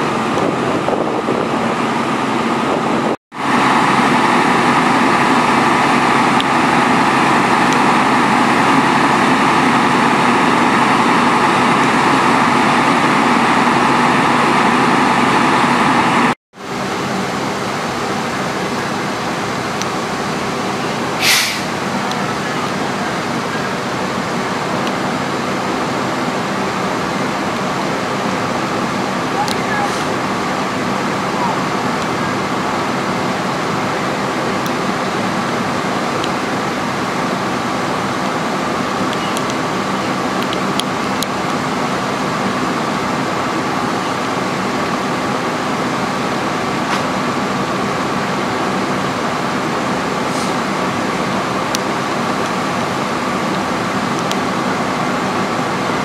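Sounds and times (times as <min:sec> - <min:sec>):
fire engine pumps droning: 0:00.0 - 0:56.0.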